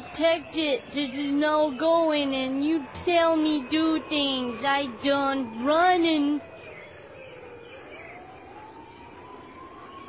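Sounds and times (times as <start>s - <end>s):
faint rising siren-like tone: 0.0s - 10.0s.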